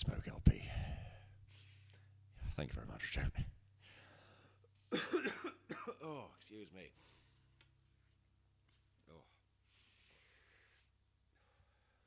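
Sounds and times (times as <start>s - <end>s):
man coughing: 4.9s - 6.3s.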